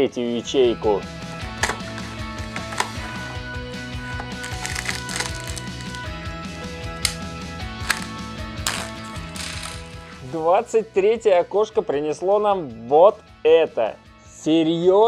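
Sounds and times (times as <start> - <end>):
background music with beat: 0.6 - 12.0
plastic bag crinkling: 4.3 - 6.0, 8.7 - 10.0.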